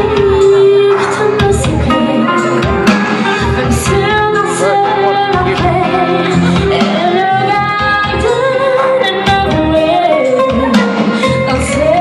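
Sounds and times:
musical accompaniment: 0.0s - 12.0s
woman singing a slow ballad: 0.0s - 12.0s.

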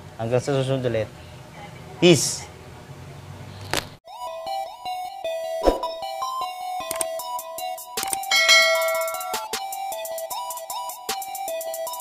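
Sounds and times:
bright bell ding: 8.3s - 9.5s.

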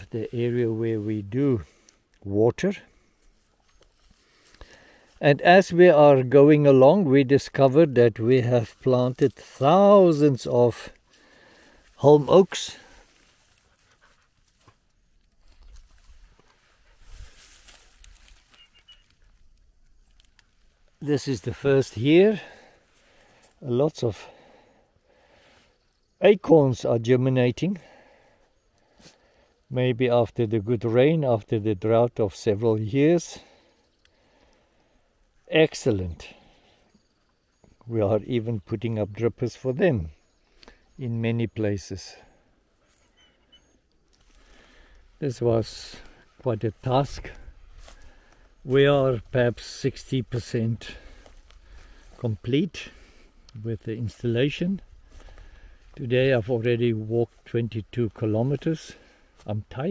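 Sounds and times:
feet rustling through straw: 2.9s - 5.3s, 8.6s - 23.7s, 42.6s - 43.2s, 44.0s - 53.6s, 54.6s - 59.5s
high chirp: 18.4s - 19.3s, 43.0s - 43.9s.

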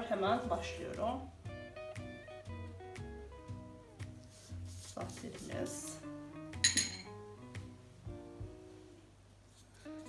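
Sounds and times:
soft background music: 0.0s - 10.0s
ceramic dish clinking against glass bowl: 6.6s - 7.2s.

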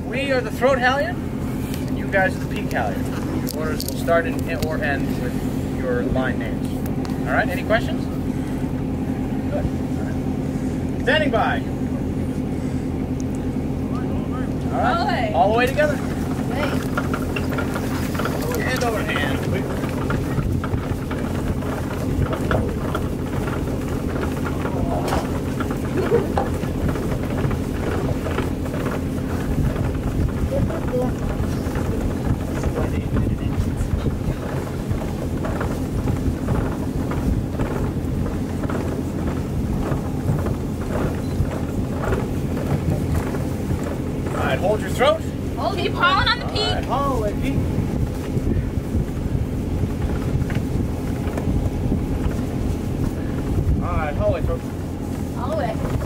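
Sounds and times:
faint crew voices: 0.0s - 50.2s
low steady engine drone: 0.0s - 56.0s
wind on microphone: 15.9s - 56.0s.

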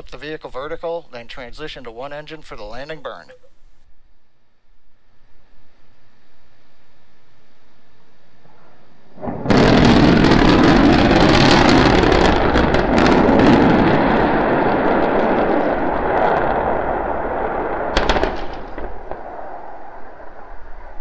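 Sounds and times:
long crackling rumble: 7.5s - 21.0s
rocket explosion blast: 9.2s - 21.0s
sharp crack: 9.2s - 21.0s.

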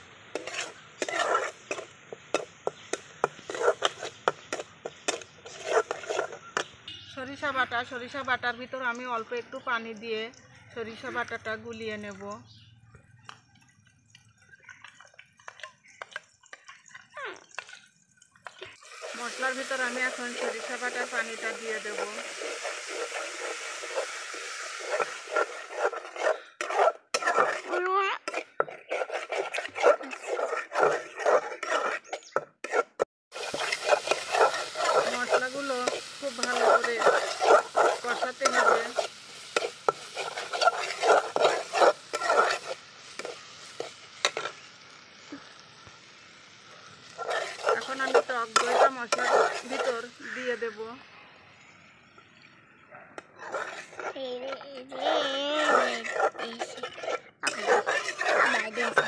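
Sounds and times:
metal spatula scraping pot: 0.3s - 6.8s, 18.4s - 44.6s, 47.0s - 50.7s, 53.4s - 59.0s
spoon stirring paste: 0.4s - 6.7s, 13.8s - 44.4s, 47.2s - 50.2s, 53.4s - 59.0s
water trickling into bowl: 13.5s - 19.2s.

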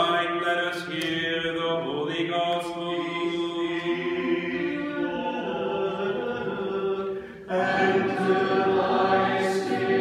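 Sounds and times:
choir chanting: 3.6s - 10.0s.

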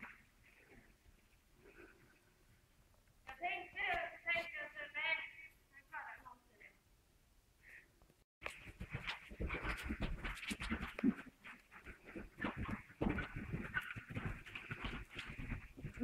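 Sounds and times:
horse hoofbeats on soft ground: 8.4s - 16.0s.

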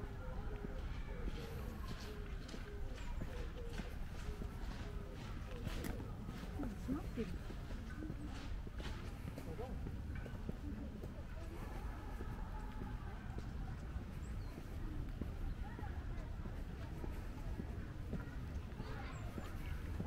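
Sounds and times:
faint voices talking: 0.0s - 20.0s
footsteps on paved path: 0.0s - 20.0s.

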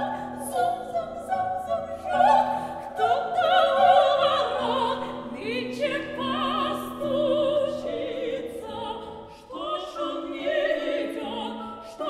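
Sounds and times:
grand piano accompaniment: 0.0s - 12.0s
women singing opera: 0.0s - 12.0s.

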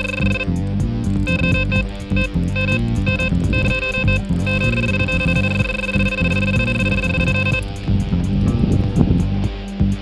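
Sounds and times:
electronic bite alarm beeping: 0.0s - 7.7s
guitar music: 0.0s - 10.0s.

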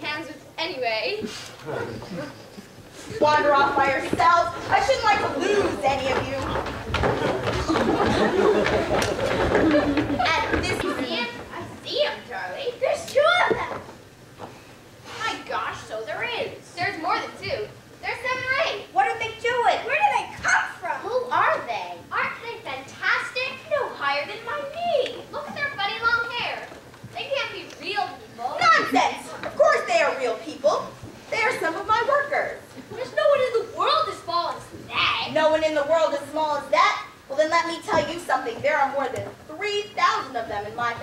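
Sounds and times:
children calling out and laughing: 2.1s - 14.0s, 15.1s - 41.0s.

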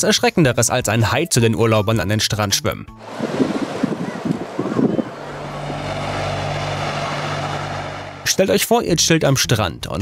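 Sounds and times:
wind-blown spray rumble: 3.0s - 8.4s
hovercraft engines droning: 3.0s - 8.6s
faint voices: 3.1s - 6.6s.

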